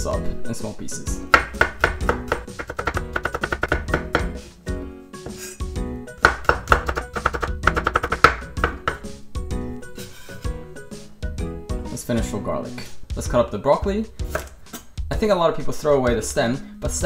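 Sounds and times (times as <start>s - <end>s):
background music: 0.0s - 17.0s
knife chopping on wooden board: 1.3s - 4.4s, 6.2s - 9.1s, 14.3s - 14.6s.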